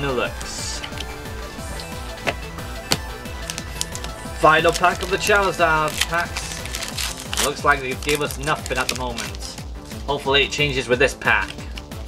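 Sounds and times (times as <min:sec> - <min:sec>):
music with low pulse: 0:00.0 - 0:12.0
cards tapping: 0:00.4 - 0:10.0, 0:11.2 - 0:12.0.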